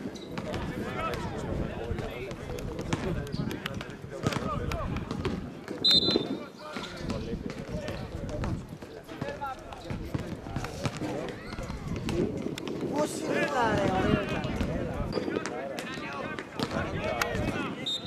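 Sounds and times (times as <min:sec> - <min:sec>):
ball being kicked: 0:02.8 - 0:12.9
referee's whistle blast: 0:05.8 - 0:06.4.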